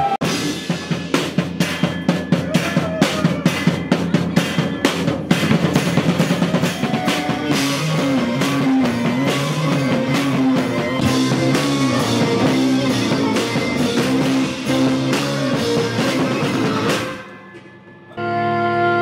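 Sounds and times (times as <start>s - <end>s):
drum kit playing quick beat: 0.0s - 17.4s
sustained melodic instrument line: 3.4s - 19.0s.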